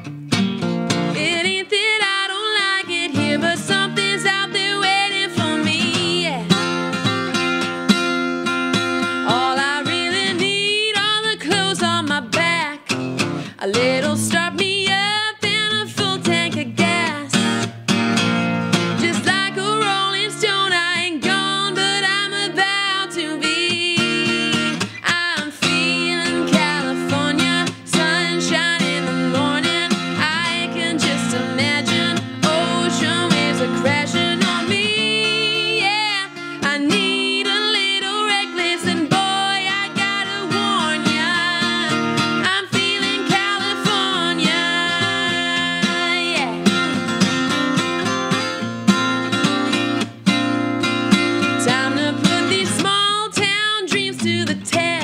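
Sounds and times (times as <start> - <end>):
acoustic guitar: 0.0 - 55.0
woman singing country song: 0.0 - 55.0.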